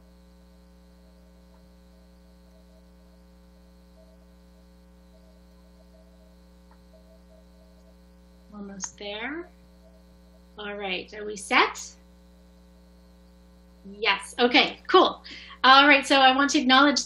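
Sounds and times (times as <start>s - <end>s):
faint mains hum: 0.0s - 17.0s.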